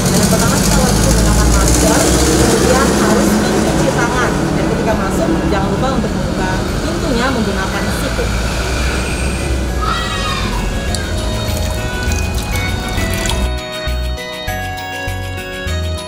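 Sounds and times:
heavy vehicle engine rumbling: 0:00.0 - 0:13.2
street traffic: 0:00.0 - 0:14.6.

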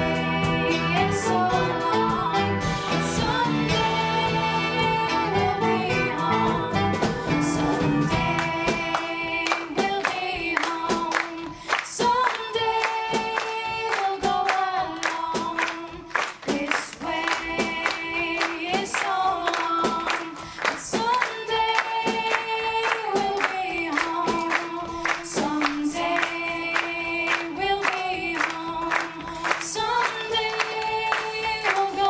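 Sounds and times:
live pop band: 0:00.0 - 0:32.0
women singing: 0:00.0 - 0:32.0
rhythmic hand clapping: 0:02.8 - 0:32.0.

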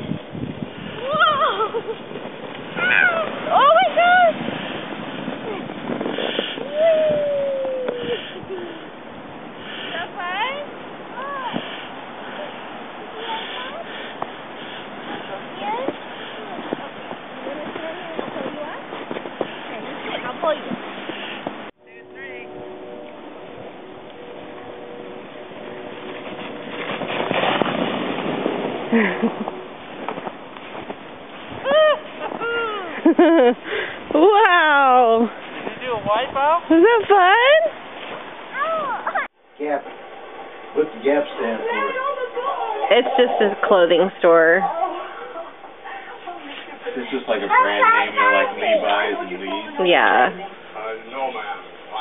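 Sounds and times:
sled sliding on snow: 0:00.0 - 0:39.8, 0:40.8 - 0:52.0
sled bumping knocks: 0:24.3 - 0:34.4.

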